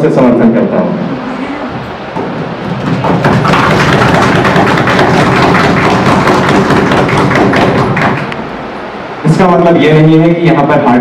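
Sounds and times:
audience applause: 2.6s - 8.4s.

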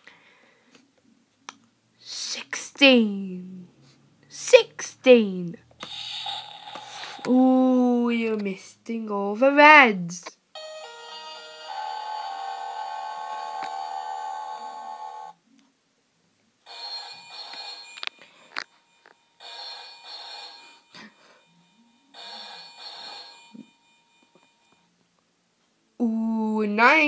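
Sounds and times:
telephone-style ringing: 16.7s - 24.9s.

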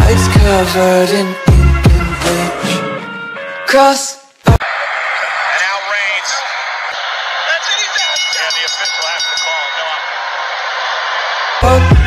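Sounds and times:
crowd voices din: 4.6s - 12.0s
high steady tones: 4.6s - 12.0s.

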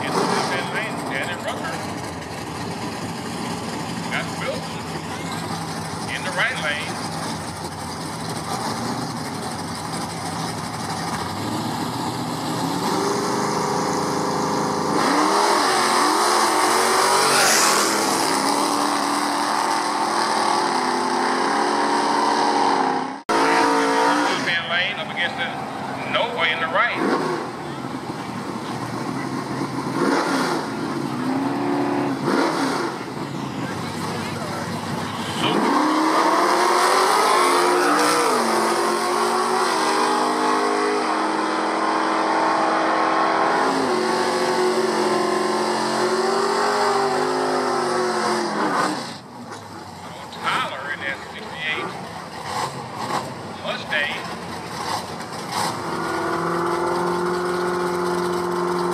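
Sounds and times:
car accelerating: 0.0s - 58.9s
car engines idling and revving: 0.0s - 58.9s
tyres screeching in a burnout: 0.0s - 58.9s.

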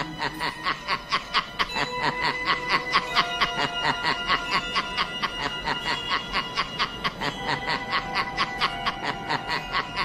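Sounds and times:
chuckling laughter: 0.0s - 10.0s
faint music tones: 0.0s - 10.0s.

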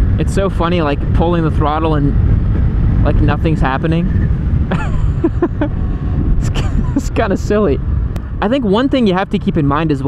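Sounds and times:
quiet motorcycle engine: 0.0s - 10.0s
road rumble: 0.0s - 10.0s
wind: 0.0s - 10.0s.

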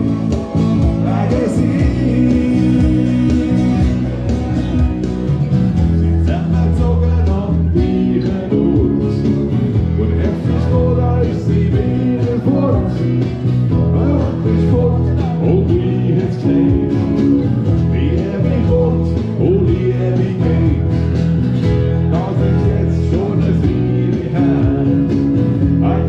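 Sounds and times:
man singing: 0.0s - 4.8s, 5.9s - 21.3s, 21.9s - 26.0s
acoustic guitar: 0.0s - 26.0s
electric bass: 0.0s - 26.0s.

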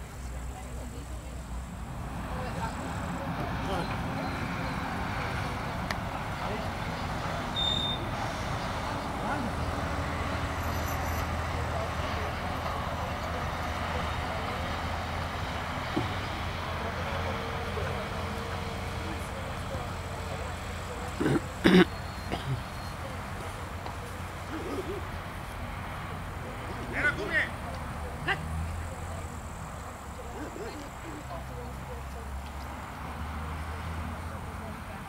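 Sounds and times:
distant road traffic hiss: 0.0s - 35.0s
truck engine drone: 0.0s - 35.0s.

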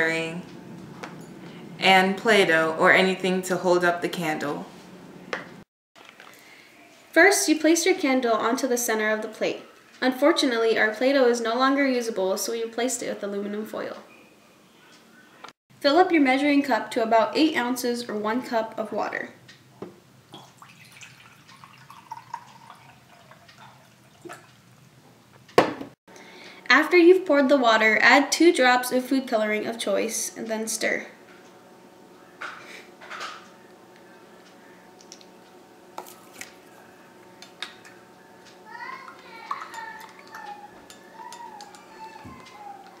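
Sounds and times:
water pouring into a cup: 20.3s - 24.6s, 39.0s - 40.6s.

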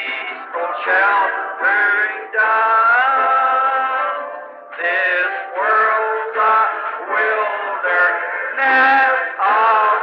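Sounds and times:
hymn singing on old tape: 0.0s - 10.0s.

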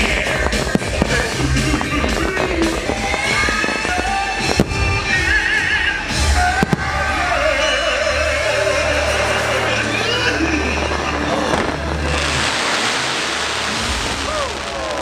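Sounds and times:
music with singing voice: 0.0s - 12.8s
fireworks bangs and crackle: 0.0s - 15.0s.

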